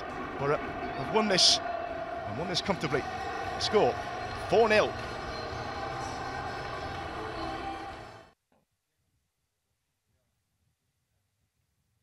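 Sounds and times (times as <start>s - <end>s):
music playing: 0.0s - 8.4s
stadium crowd hubbub: 0.0s - 8.4s.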